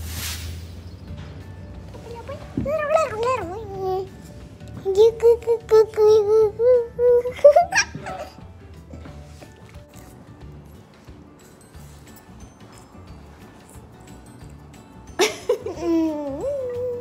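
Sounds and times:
faint background music: 0.0s - 17.0s
girl squealing: 15.8s - 17.0s.

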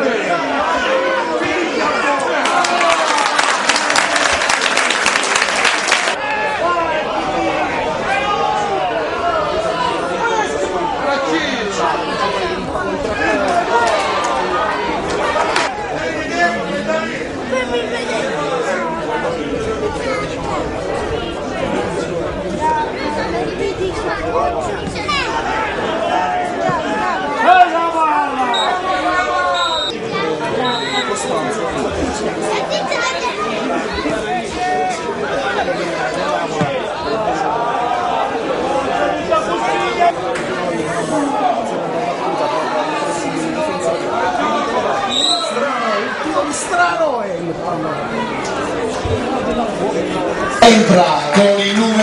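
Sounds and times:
babble of voices: 0.0s - 52.0s
people chattering: 0.0s - 52.0s.

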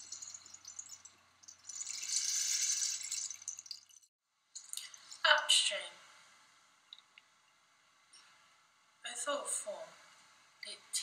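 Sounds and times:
running water splashing: 0.0s - 4.1s.

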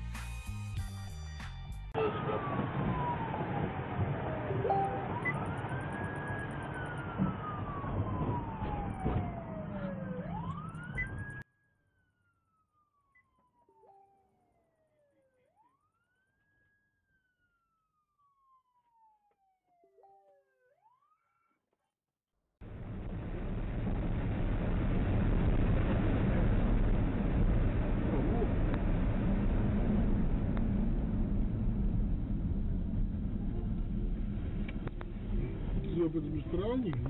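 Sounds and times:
police siren wailing: 2.0s - 11.4s, 12.2s - 21.6s
road and engine noise: 2.0s - 11.4s, 22.6s - 37.0s.

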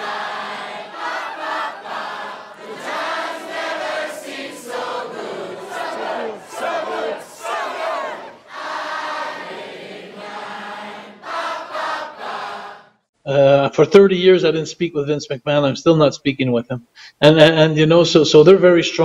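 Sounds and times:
crowd shouting and singing: 0.0s - 12.3s.

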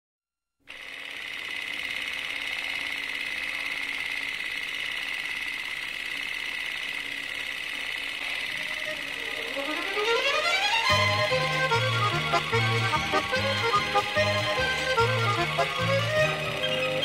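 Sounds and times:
fast mechanical clatter: 0.7s - 11.0s.

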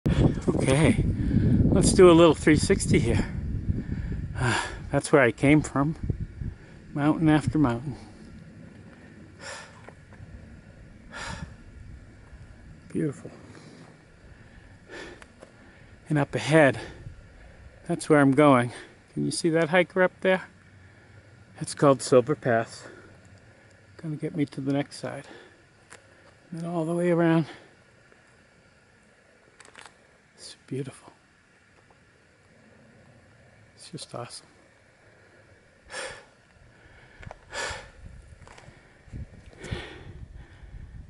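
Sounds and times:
person breathing: 7.9s - 9.9s, 11.0s - 11.8s, 13.3s - 16.0s, 35.0s - 41.0s.

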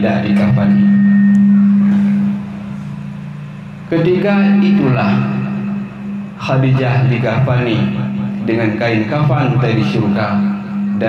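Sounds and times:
loudspeaker hum: 0.0s - 11.0s.

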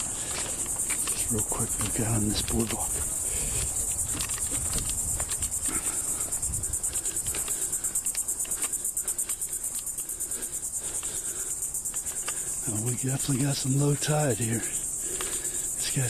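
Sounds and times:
footsteps on wooden boardwalk: 0.0s - 14.0s
insects trilling: 0.0s - 16.0s.

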